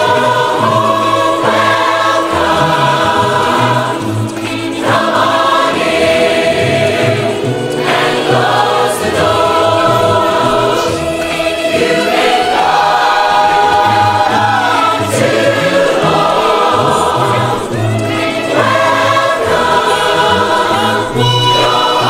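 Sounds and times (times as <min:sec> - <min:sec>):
crowd singing in chorus: 0:00.0 - 0:22.0.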